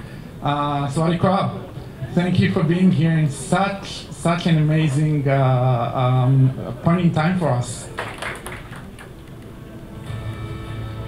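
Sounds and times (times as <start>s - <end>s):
faint voices in a large room: 0.0s - 10.2s.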